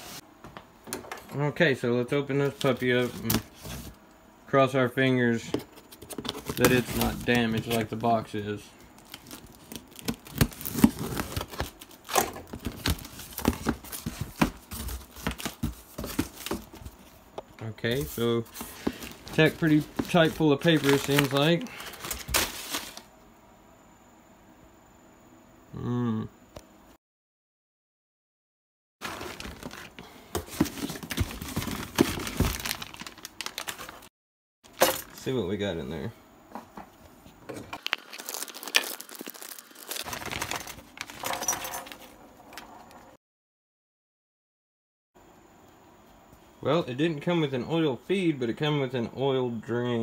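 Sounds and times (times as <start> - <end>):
plastic and paper crinkling: 6.0 - 8.4, 9.0 - 17.1, 17.9 - 23.1, 29.0 - 34.1, 37.8 - 42.1
tape tearing: 37.8 - 40.8.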